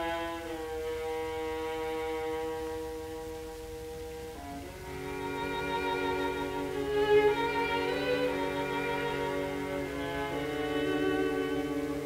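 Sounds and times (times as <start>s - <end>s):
record hiss and rumble: 0.0s - 12.0s
strings and woodwinds holding chord: 0.0s - 12.0s.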